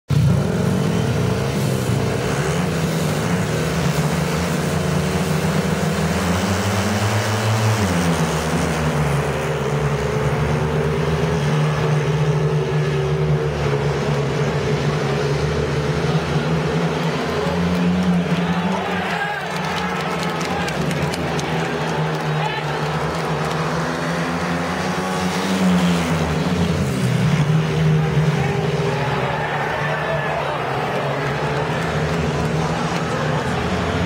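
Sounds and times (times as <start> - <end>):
motorcycles racing at high revs: 0.1 - 34.0.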